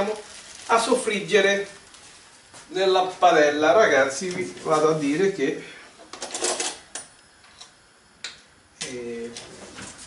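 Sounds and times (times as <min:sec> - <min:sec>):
objects clattering and rustling: 0:06.0 - 0:06.9.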